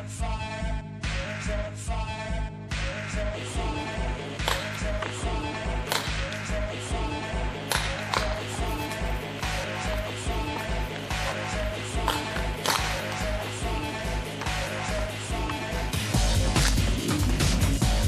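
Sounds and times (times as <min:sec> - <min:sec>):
music with driving beat: 0:00.0 - 0:18.0.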